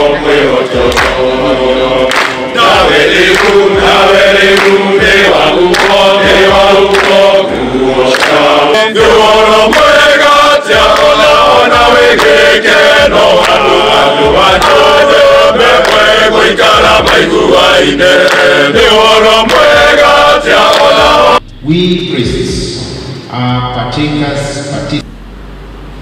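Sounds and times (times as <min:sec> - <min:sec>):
men singing a hymn together: 0:00.0 - 0:21.4
sharp hand claps: 0:00.9 - 0:01.2, 0:02.1 - 0:03.6, 0:04.5 - 0:07.3, 0:08.1 - 0:08.4, 0:09.7 - 0:10.0, 0:10.8 - 0:11.2, 0:12.1 - 0:12.4, 0:14.6 - 0:14.8, 0:15.7 - 0:16.1, 0:18.2 - 0:18.5, 0:19.5 - 0:19.8, 0:20.6 - 0:21.1.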